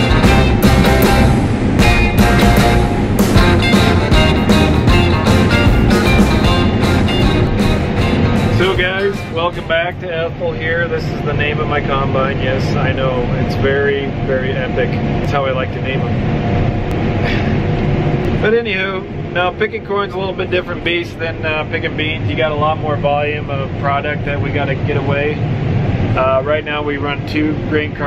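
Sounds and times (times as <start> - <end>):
rock music with guitar: 0.0 - 9.7
combine harvester hum: 0.0 - 28.0
man talking: 8.5 - 16.2, 18.4 - 25.4, 26.2 - 28.0.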